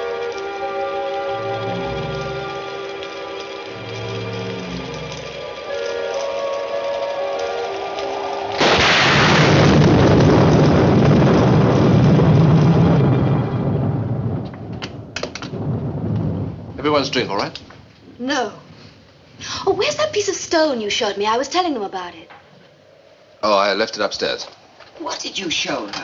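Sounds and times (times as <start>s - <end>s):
thunderclap rumbling: 0.0s - 18.8s
film score held notes: 0.0s - 19.2s.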